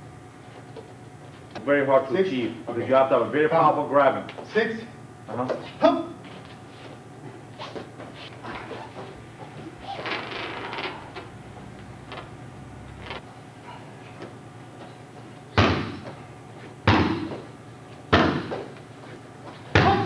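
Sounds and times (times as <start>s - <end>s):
kicks smacking a punching bag: 15.5s - 16.2s, 16.8s - 17.5s, 18.1s - 18.7s, 19.7s - 20.0s.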